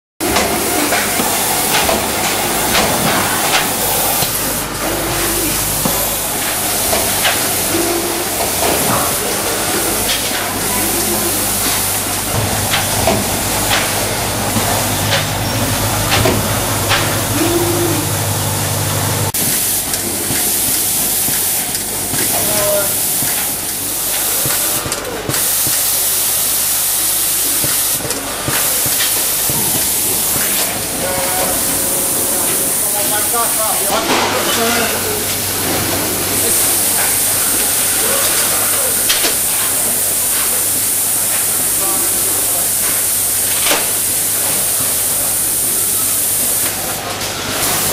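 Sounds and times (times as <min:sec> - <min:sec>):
machine hissing steadily: 0:00.2 - 0:47.9.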